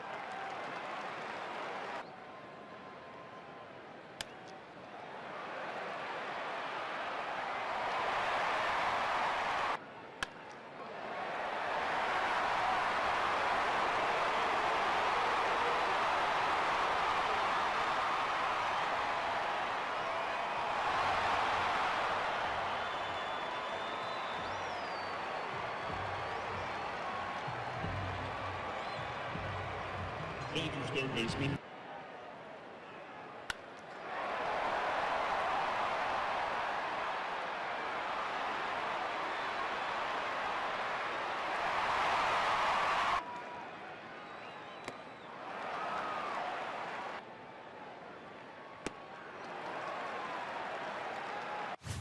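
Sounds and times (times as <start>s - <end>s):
stadium crowd cheering: 0.0s - 52.0s.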